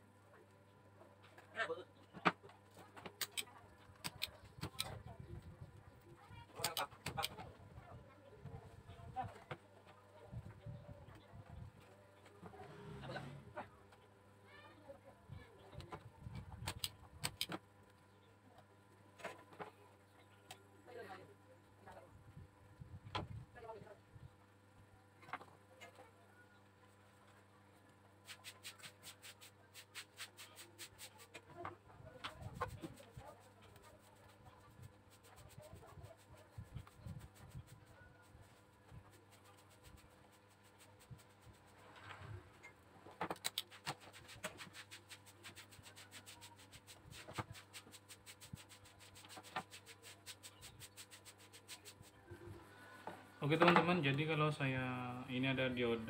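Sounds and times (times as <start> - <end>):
clicks and taps of test probes: 16.6 - 17.6.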